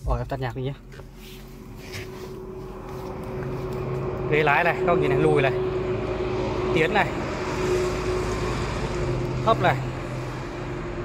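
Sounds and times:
car cabin engine hum: 0:00.0 - 0:11.0.

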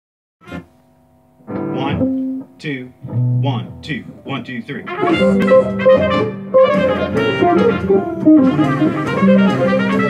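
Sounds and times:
electric guitar held notes: 0:00.4 - 0:10.0
man counting in: 0:01.7 - 0:05.5.

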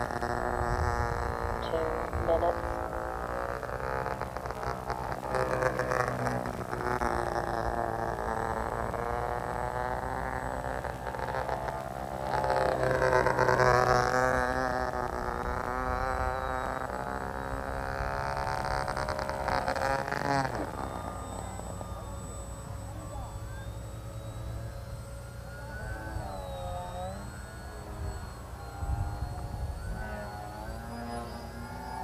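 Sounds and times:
model plane motor buzzing: 0:00.0 - 0:32.0.

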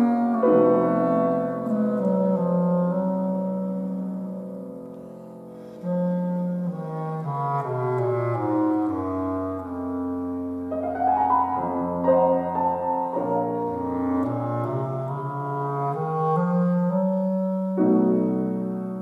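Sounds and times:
bass clarinet: 0:00.0 - 0:19.0
piano: 0:00.0 - 0:19.0.

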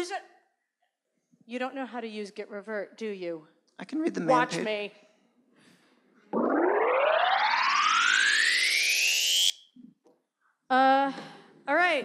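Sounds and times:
synthesized rising sweep: 0:06.3 - 0:09.6.

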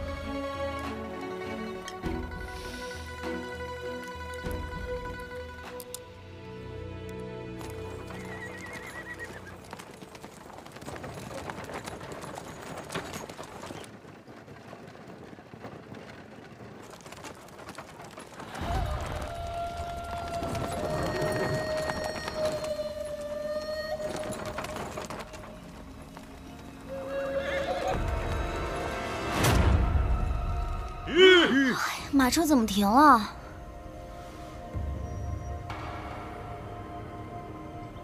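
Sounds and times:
background music: 0:00.0 - 0:10.4, 0:18.5 - 0:38.0
horse hooves on dirt: 0:00.0 - 0:31.1.

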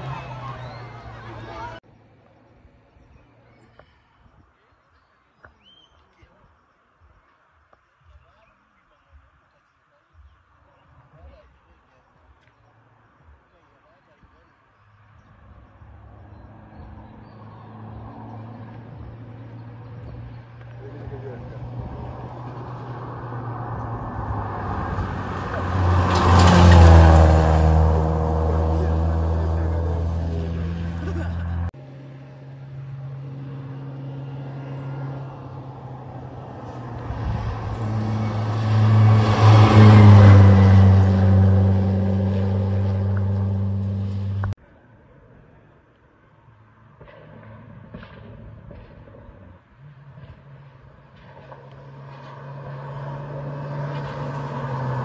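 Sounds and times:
rally car engines passing: 0:00.0 - 0:01.8, 0:15.2 - 0:44.6, 0:47.0 - 0:55.0.

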